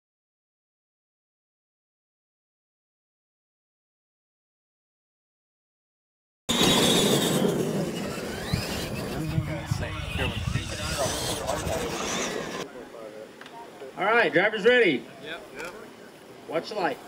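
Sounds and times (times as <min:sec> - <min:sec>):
toy truck motors and tyres: 0:06.5 - 0:12.6
people talking: 0:08.9 - 0:17.0.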